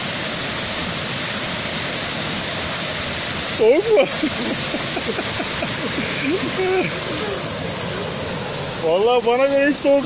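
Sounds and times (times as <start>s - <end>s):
small waterfall rushing: 0.0s - 10.0s.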